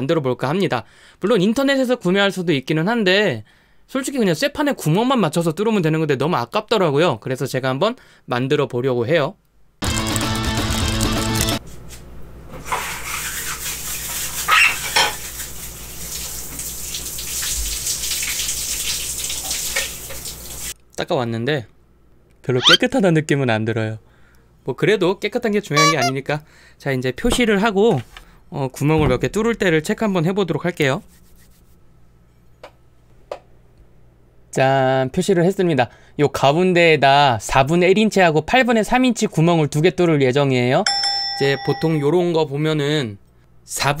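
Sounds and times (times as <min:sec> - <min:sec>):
music: 0:09.8 - 0:11.6
water running at sink: 0:12.7 - 0:20.7.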